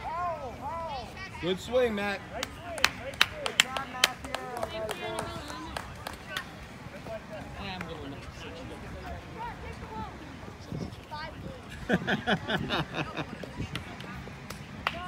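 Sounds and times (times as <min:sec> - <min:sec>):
children and spectators chattering: 0:00.0 - 0:15.0.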